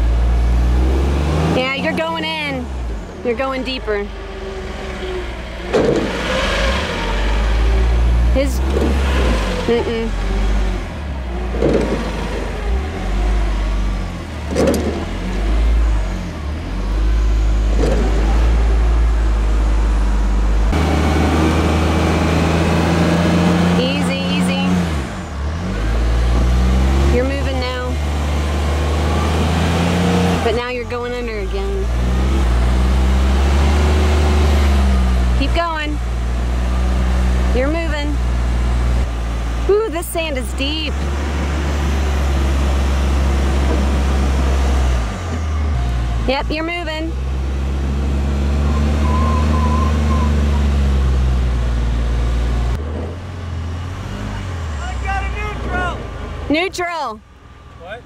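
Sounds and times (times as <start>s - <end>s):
van engine revving hard: 0.0s - 57.1s.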